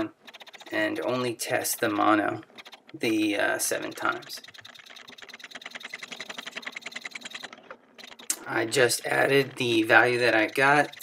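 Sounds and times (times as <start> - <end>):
rapid even clicking: 0.0 - 11.0.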